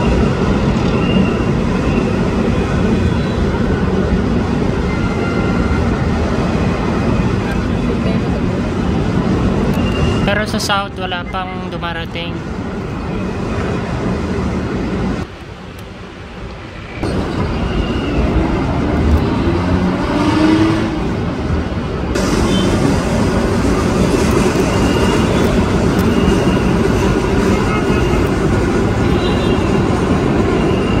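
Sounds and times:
loud steady rumbling: 17.0 - 31.0.

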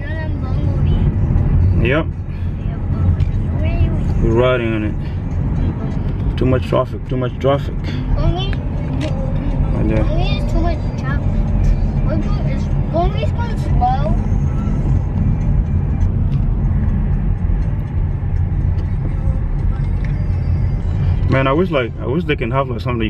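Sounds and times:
car engine and road rumble: 0.0 - 23.0.

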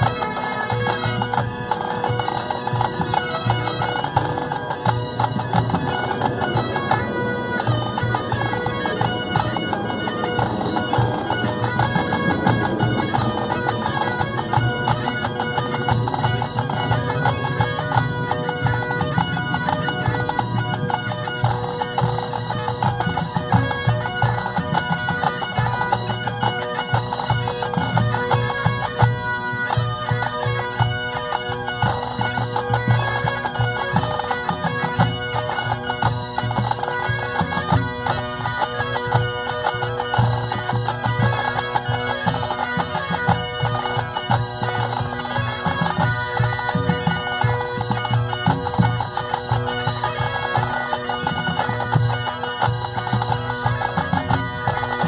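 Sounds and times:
bagpipes playing: 0.0 - 55.0.

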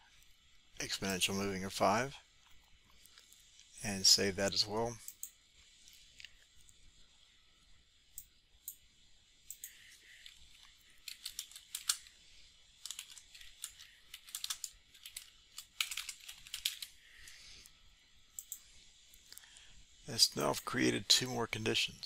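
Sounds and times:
computer keyboard typing: 12.9 - 16.9.

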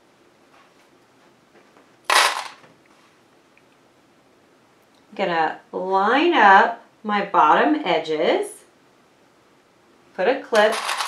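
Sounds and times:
metallic clatter of clips in tin: 10.6 - 11.0.

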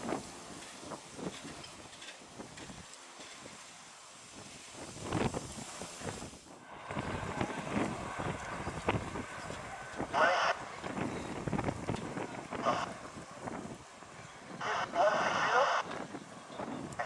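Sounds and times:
wind gusting across microphone: 0.0 - 3.6, 4.3 - 17.0
distant jet airliner: 6.6 - 13.8.

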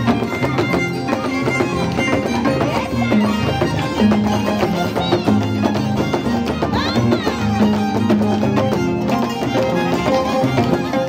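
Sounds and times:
violin melody: 0.0 - 11.0.

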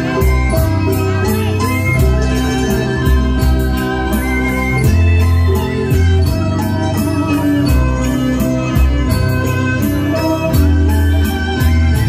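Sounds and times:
electronic keyboard music: 0.0 - 12.0.

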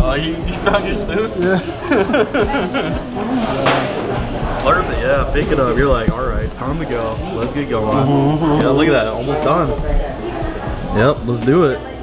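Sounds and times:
men laughing: 0.5 - 3.6
breathy rush of noise: 3.0 - 4.6.

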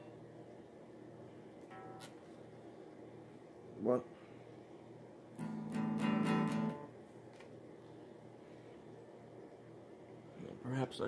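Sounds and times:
guitar chord strummed: 1.7 - 2.3, 5.4 - 6.9.

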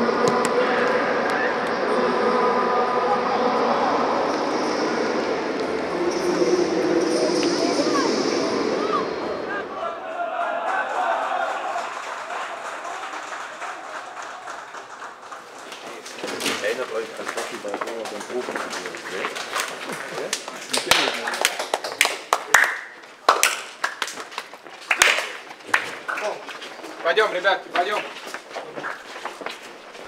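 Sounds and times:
men chattering: 15.4 - 21.5
hand slaps and claps: 20.3 - 26.4.

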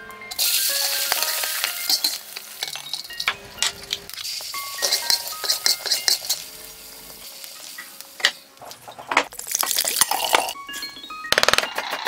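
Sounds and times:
spatula scraping and clinking wok: 0.3 - 9.2
peanuts sizzling in oil: 0.3 - 10.2.

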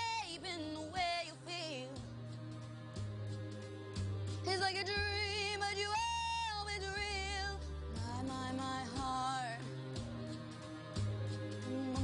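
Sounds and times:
pop backing track with bass: 0.0 - 12.0.

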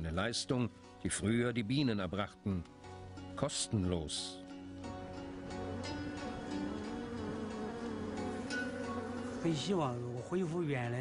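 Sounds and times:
soft background music: 0.0 - 11.0
swarm of bees buzzing: 4.6 - 11.0.

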